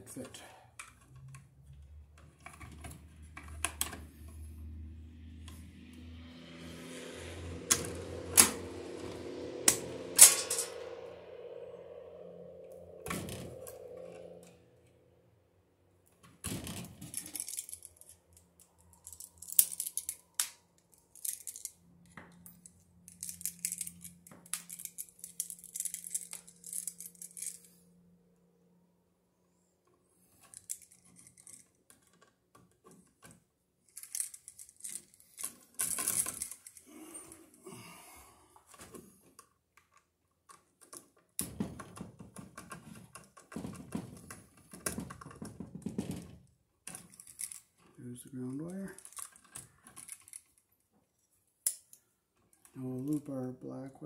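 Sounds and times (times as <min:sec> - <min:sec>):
low hum: 0:03.4 - 0:16.2
wire strippers clicking and scraping: 0:16.2 - 0:27.8, 0:46.8 - 0:50.8.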